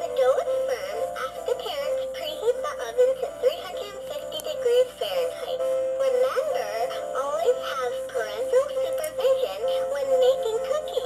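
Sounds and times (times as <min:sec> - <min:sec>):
toy singing through speaker: 0:00.0 - 0:11.0.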